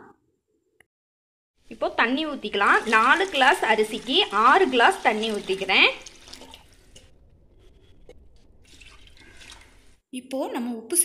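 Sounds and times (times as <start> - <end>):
water poured into a pot: 1.7 - 10.0.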